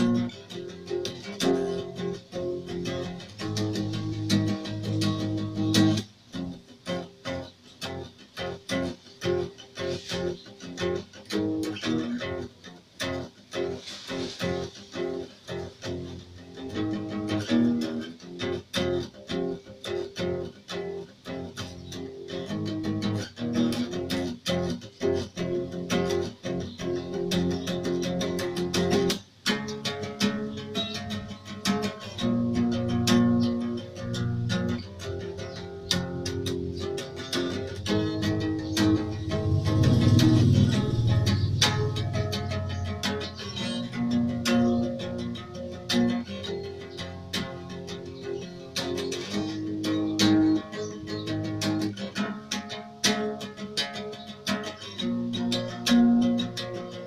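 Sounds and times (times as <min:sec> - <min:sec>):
acoustic guitar chords: 0:00.0 - 0:57.0.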